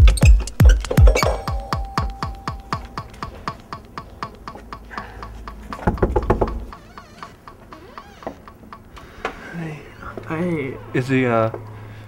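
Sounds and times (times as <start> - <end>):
electronic music: 0.0 - 4.6
knocking on a door: 5.7 - 7.4.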